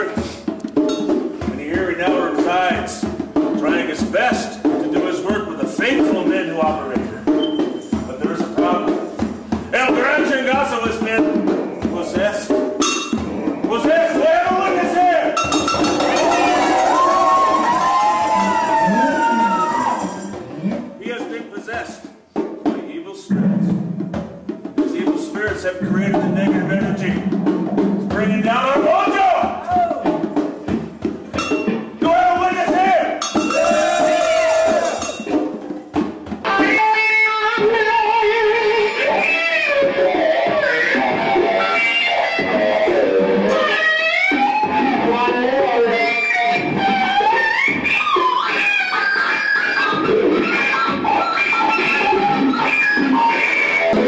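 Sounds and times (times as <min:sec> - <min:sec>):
slide electric guitar: 0:06.1 - 0:14.8, 0:15.4 - 0:21.0, 0:25.7 - 0:28.9, 0:36.4 - 0:54.0.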